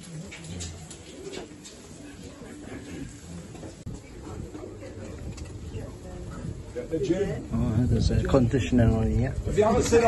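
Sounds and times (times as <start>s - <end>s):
muffled chatter of people: 0.0s - 10.0s.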